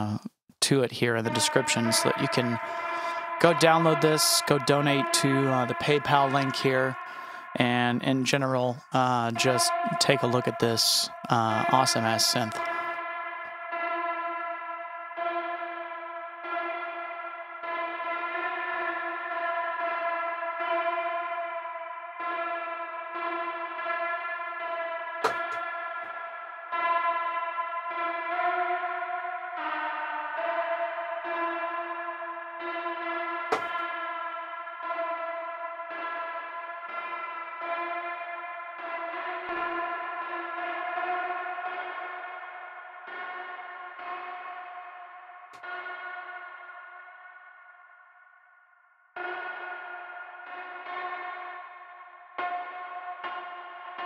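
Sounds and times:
synthesizer tone with echo: 0:01.2 - 0:19.9, 0:25.2 - 0:32.8, 0:33.5 - 0:35.1.

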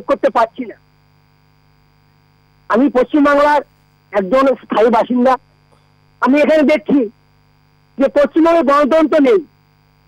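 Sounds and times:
person speaking over telephone: 0:00.0 - 0:00.8, 0:02.7 - 0:05.4, 0:06.2 - 0:07.2, 0:08.0 - 0:09.5
electrical hum: 0:00.0 - 0:10.0.

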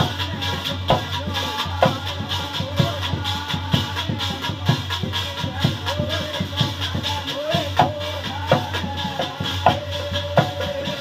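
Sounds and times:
brass plate beaten rhythmically: 0:00.0 - 0:11.0.

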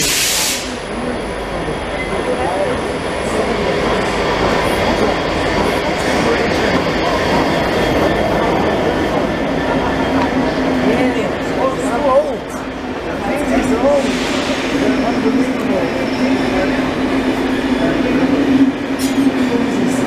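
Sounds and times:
loud hiss: 0:00.0 - 0:00.9
train rumble: 0:00.0 - 0:20.0.

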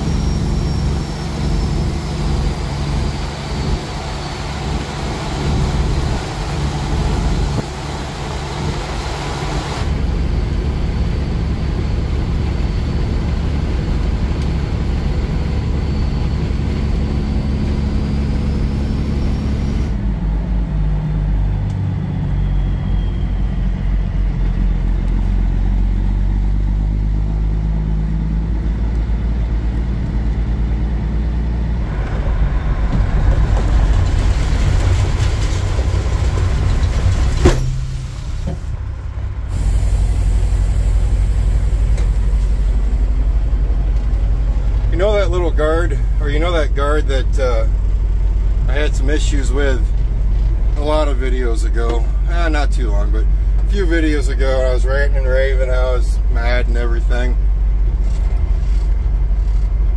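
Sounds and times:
diesel truck engine running: 0:00.0 - 0:59.9
road noise: 0:00.0 - 0:59.9.

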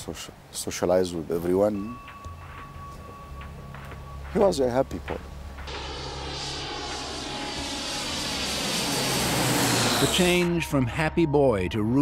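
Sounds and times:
high engine whine: 0:02.5 - 0:10.7
jet airliner engines: 0:05.1 - 0:10.6.

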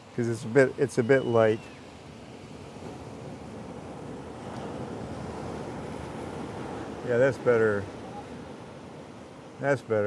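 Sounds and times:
surf washing on rocky shore: 0:00.0 - 0:10.0.

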